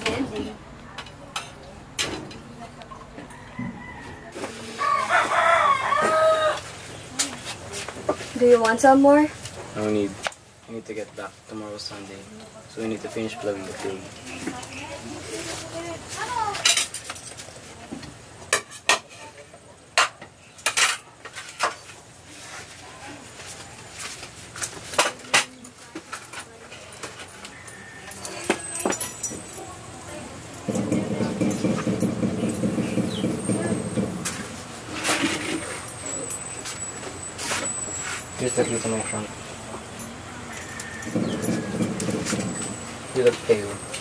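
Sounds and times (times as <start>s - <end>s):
dishes clinking and knocking: 18.0s - 21.8s, 30.5s - 36.8s, 40.0s - 42.9s.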